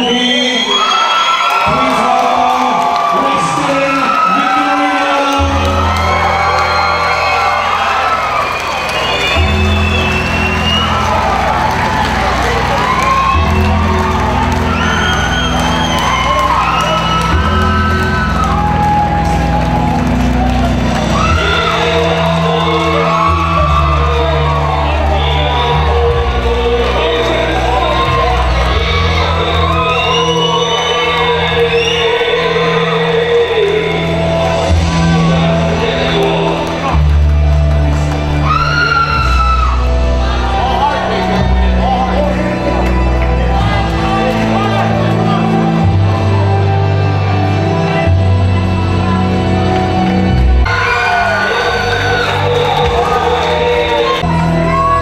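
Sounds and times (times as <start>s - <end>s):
crowd cheering and whooping: 0.0s - 55.0s
music with heavy bass: 9.0s - 55.0s.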